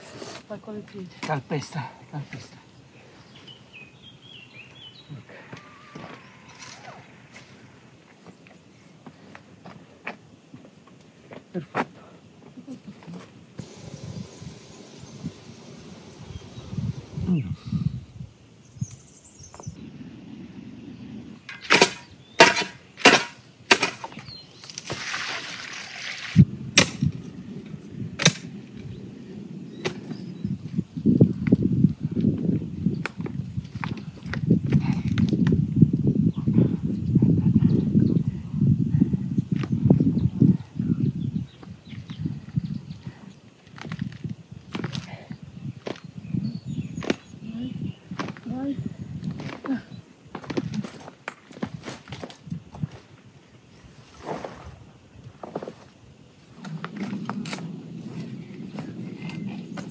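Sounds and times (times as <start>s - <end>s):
low irregular rumbling and rustling: 13.2s - 18.6s, 46.5s - 59.9s
digging tool striking stony ground: 21.5s - 27.1s, 28.2s - 28.5s.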